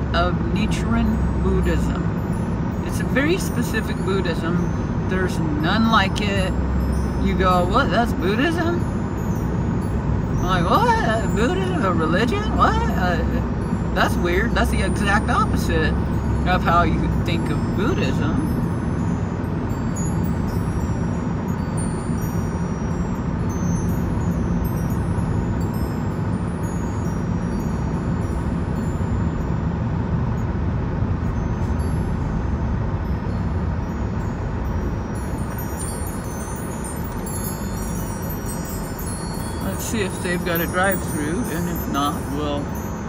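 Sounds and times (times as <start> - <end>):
car road and engine noise: 0.0 - 43.0.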